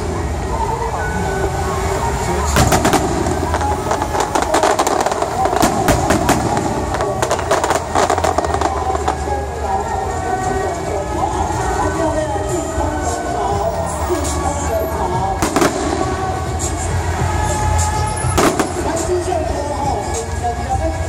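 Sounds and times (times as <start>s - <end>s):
fireworks popping and banging: 2.5s - 9.3s, 15.3s - 16.8s, 18.3s - 19.2s.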